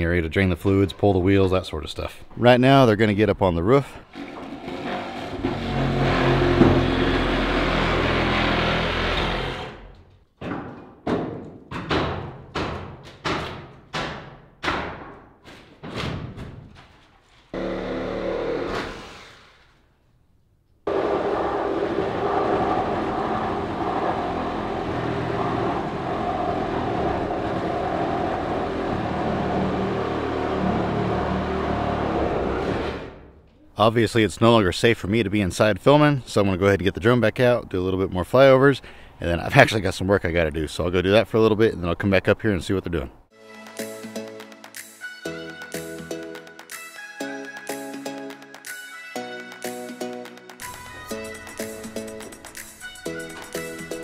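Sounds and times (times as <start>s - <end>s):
power saw cutting wood: 4.1s - 10.0s, 17.5s - 19.6s, 20.9s - 33.2s.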